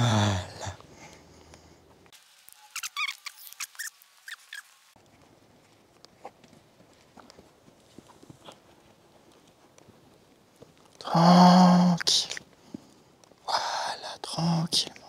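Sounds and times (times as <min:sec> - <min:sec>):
short sharp high squeaks: 0:02.5 - 0:04.8
horse walking on sand: 0:05.0 - 0:11.0.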